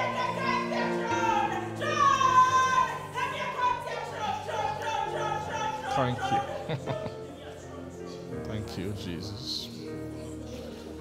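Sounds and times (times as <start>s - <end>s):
keyboard sustained chords: 0.0s - 11.0s.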